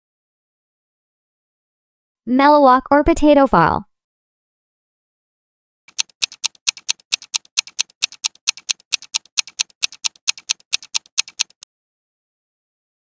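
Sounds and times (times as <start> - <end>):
timer ticking: 5.9 - 11.6.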